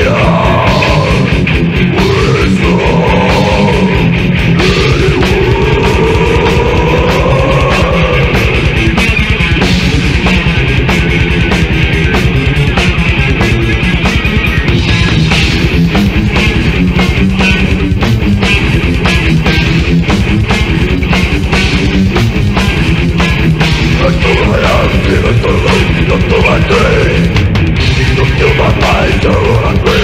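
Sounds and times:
distorted metal guitars: 0:00.0 - 0:30.0
very fast drumming: 0:00.0 - 0:30.0.

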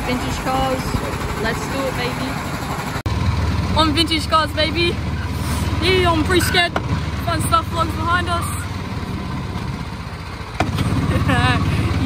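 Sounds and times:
ride car engine putter: 0:06.2 - 0:07.2, 0:08.4 - 0:11.1.

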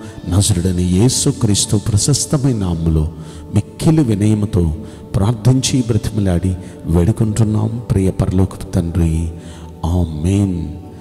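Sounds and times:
man intoning prayer: 0:00.0 - 0:11.0
soft background music: 0:00.0 - 0:11.0.

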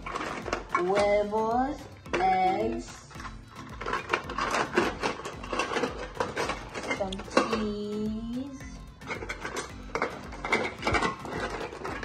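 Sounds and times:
plastic toy food clattering: 0:00.0 - 0:02.3, 0:03.0 - 0:07.6, 0:09.0 - 0:12.0.

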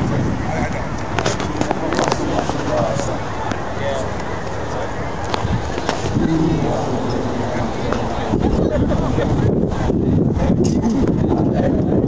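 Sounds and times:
team talking and calling out: 0:00.0 - 0:12.0.

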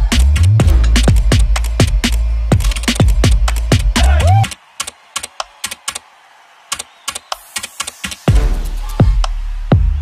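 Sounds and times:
electronic music: 0:00.0 - 0:10.0.

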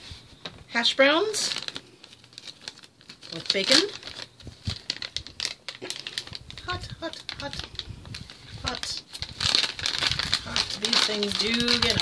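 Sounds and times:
plastic pouches crinkling: 0:01.2 - 0:12.0
irregular clicks and crackles: 0:01.4 - 0:12.0.

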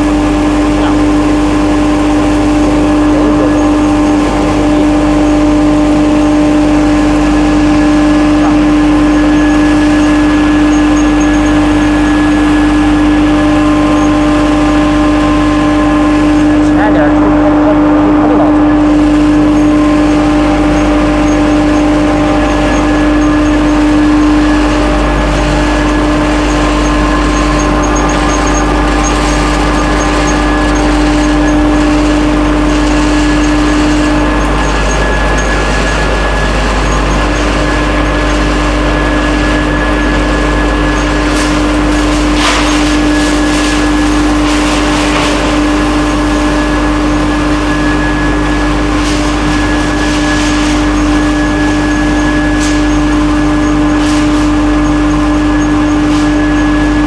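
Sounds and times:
pellet mill machine drone: 0:00.0 - 0:57.0
rattling bursts: 0:00.0 - 0:57.0.

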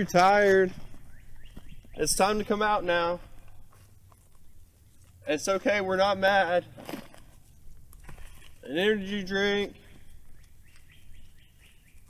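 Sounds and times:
bird chirping: 0:00.8 - 0:05.3, 0:09.6 - 0:12.0.

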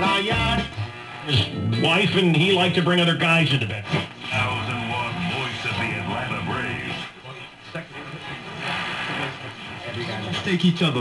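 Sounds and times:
radio broadcast speech and music: 0:00.0 - 0:11.0
radio tuning across stations: 0:00.0 - 0:11.0.

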